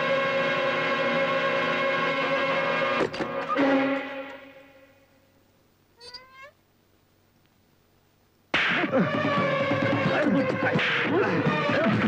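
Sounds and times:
cat meowing: 0:06.0 - 0:06.6.

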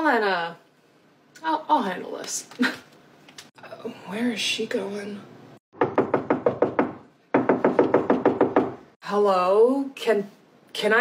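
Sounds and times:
rapid knocking on a door: 0:05.7 - 0:08.9.

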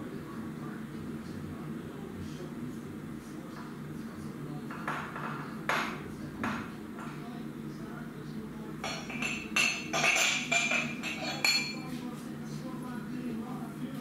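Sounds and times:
low steady hum: 0:00.0 - 0:14.0
crockery and cutlery clinking: 0:04.7 - 0:07.3, 0:08.8 - 0:12.0.

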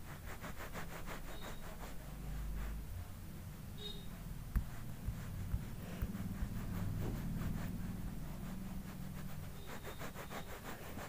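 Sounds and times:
stylus scribbling on touchscreen: 0:00.0 - 0:02.9, 0:03.5 - 0:11.0
low steady hum: 0:00.0 - 0:11.0.

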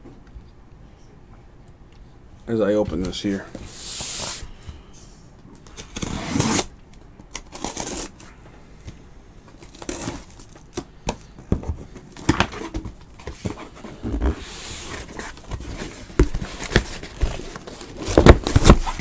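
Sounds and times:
cardboard and tape scraping: 0:05.8 - 0:06.7, 0:07.5 - 0:08.2, 0:09.7 - 0:10.5.

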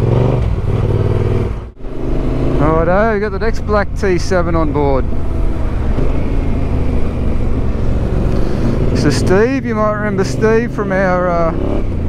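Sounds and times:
motorcycle engine running: 0:00.0 - 0:12.0
road noise: 0:00.0 - 0:12.0.

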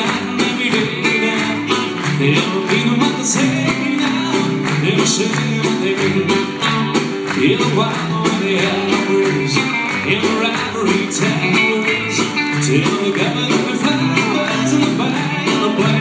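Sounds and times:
country band playing live: 0:00.0 - 0:16.0.

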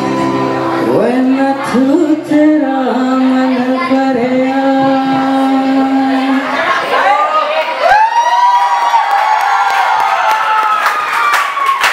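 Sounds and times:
audience cheering and whooping: 0:06.7 - 0:11.9.

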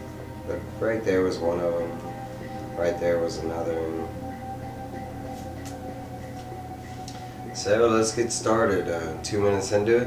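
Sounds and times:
soft sustained background music: 0:00.0 - 0:10.0.

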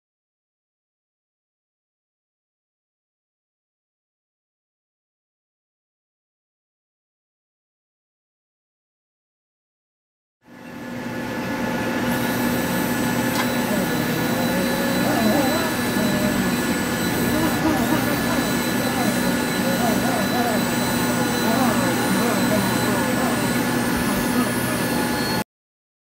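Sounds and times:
rotary polisher whining: 0:11.2 - 0:25.4.

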